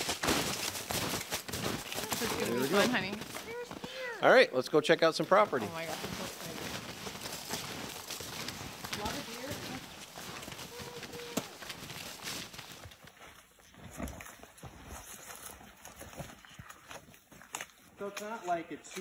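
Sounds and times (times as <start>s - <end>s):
snowshoe footsteps crunching in snow: 0.0s - 4.1s, 5.2s - 19.0s.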